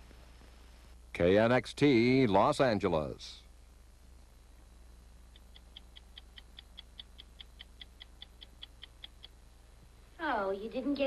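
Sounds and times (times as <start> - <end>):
low steady hum: 0.0 - 11.0
faint rapid ticking: 5.3 - 9.4.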